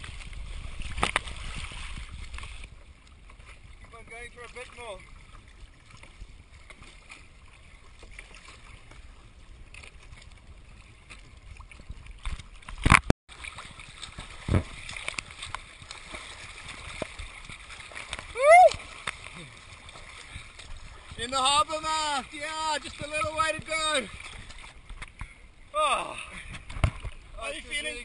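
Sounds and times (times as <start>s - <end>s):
water sloshing and splashing: 0.0s - 28.0s
person shouting: 18.4s - 18.8s.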